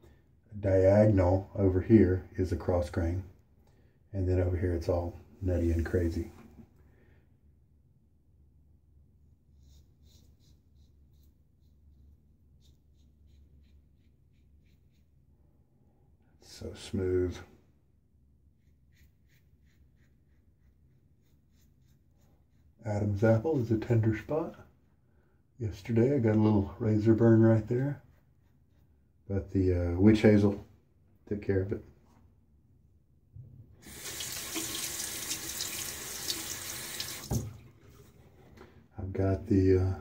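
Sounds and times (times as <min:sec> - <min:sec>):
tap water splashing into sink: 0:33.8 - 0:38.2.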